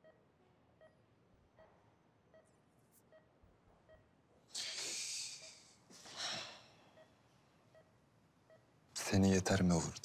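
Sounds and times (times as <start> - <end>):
patient monitor beeps: 0.8 - 4.2, 6.9 - 8.7.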